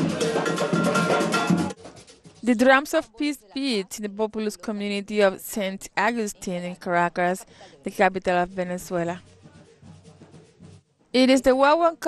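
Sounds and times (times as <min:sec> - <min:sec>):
brass instruments: 0:00.0 - 0:02.2
drums: 0:00.0 - 0:02.8, 0:08.5 - 0:11.6
metal hand percussion: 0:00.0 - 0:03.9, 0:08.0 - 0:11.8.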